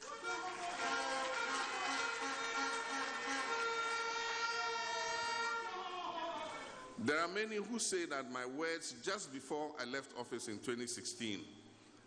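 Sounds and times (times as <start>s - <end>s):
horns sounding long notes: 0.0s - 6.8s
crowd noise: 0.0s - 7.2s.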